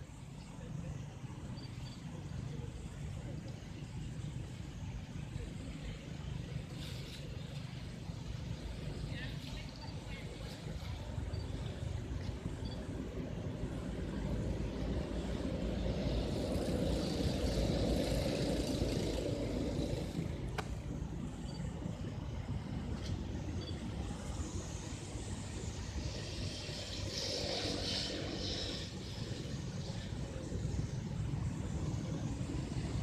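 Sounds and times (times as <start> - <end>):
traffic rumble: 0.0 - 33.0.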